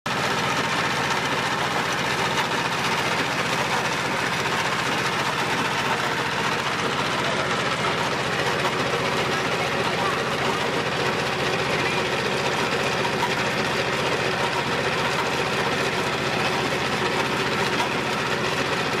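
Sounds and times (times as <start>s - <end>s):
diesel engine chugging: 0.1s - 19.0s
oil expeller pressing seed: 0.1s - 19.0s.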